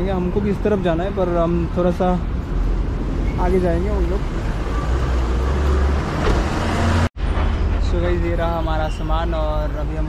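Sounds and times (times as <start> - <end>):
car door shutting: 6.1 - 6.7.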